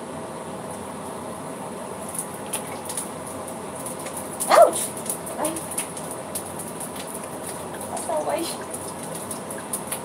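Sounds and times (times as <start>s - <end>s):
oil crackling in a frying pan: 0.8s - 10.0s.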